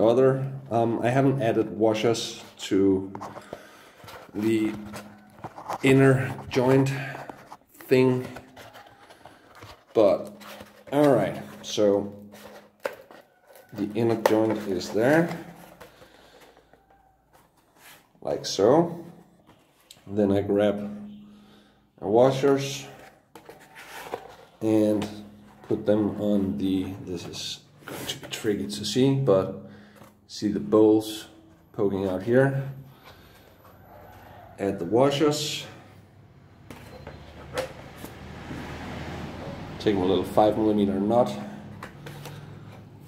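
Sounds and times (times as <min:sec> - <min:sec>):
handling foam armor pieces: 0:00.0 - 0:20.0, 0:22.1 - 0:28.9.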